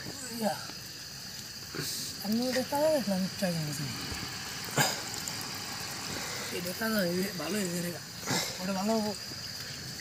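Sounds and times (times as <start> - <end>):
air pump bubbling in water: 0.0 - 10.0.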